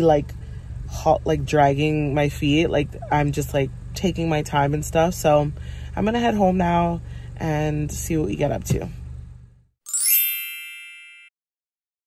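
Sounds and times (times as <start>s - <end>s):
bright chime: 9.9s - 11.3s.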